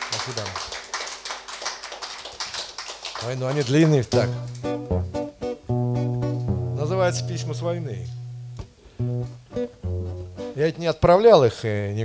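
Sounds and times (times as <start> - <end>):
audience applauding: 0.0 - 4.8.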